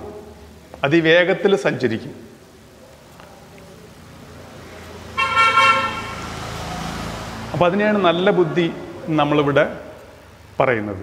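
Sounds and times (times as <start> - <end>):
road traffic rumble: 2.4 - 11.0
vehicle horn honk: 5.2 - 6.4.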